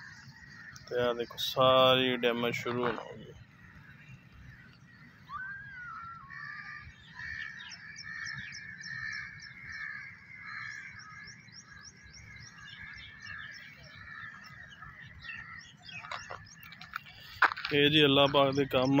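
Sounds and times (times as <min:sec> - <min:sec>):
birds chirping and calling: 0:00.0 - 0:19.0.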